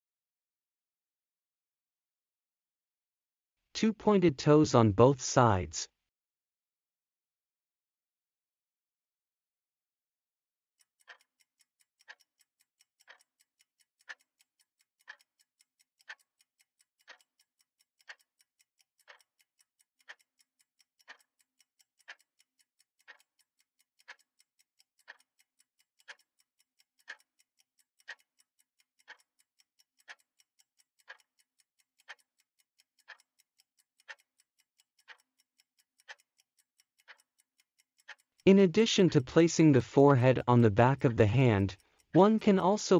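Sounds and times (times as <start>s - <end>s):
countdown timer ticking: 3.8s - 5.7s, 18.0s - 42.9s.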